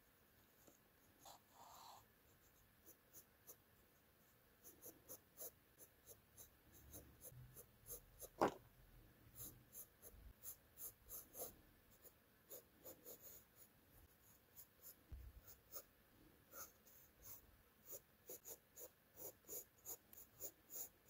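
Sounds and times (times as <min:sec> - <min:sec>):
pencil scratching on paper: 0:00.6 - 0:03.6, 0:04.2 - 0:08.5, 0:09.3 - 0:21.0.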